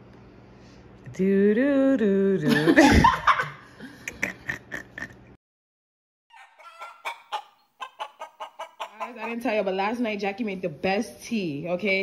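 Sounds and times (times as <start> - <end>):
chicken clucking: 6.3 - 9.5.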